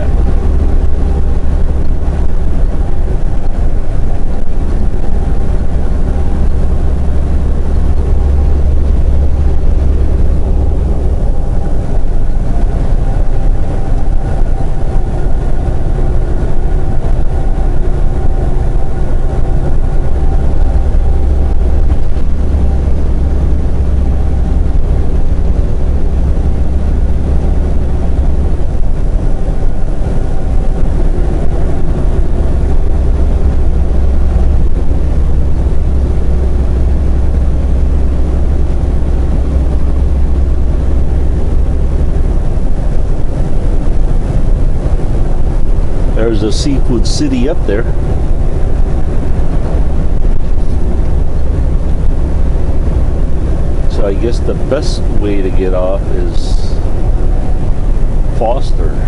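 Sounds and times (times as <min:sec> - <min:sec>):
diesel truck engine drone: 0:00.0 - 0:59.0
road noise: 0:00.0 - 0:59.0.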